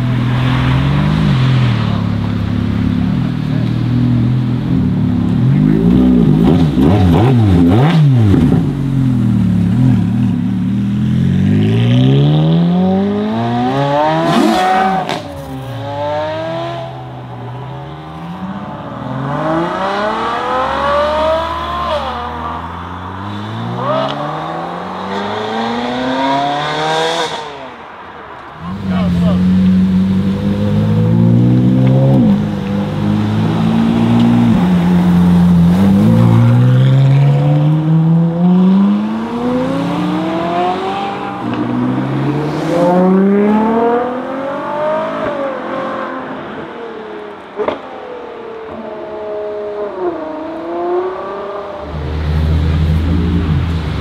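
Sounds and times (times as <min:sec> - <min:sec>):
sports cars accelerating hard: 0:00.0 - 0:27.9, 0:28.5 - 0:54.0.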